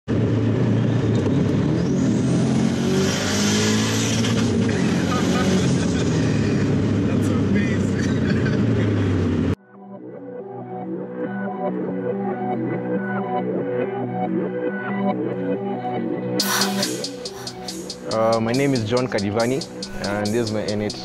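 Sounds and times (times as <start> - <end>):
car engine pulling hard: 0.1 - 9.6
high turbo whistle: 16.4 - 18.1.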